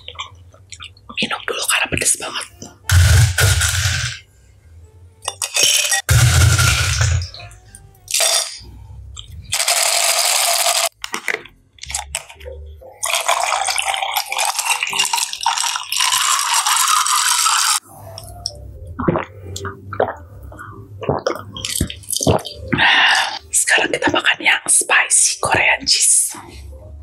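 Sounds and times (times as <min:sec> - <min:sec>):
ice cubes clattering into glass: 0:13.0 - 0:17.8
water pouring over ice: 0:13.0 - 0:17.8.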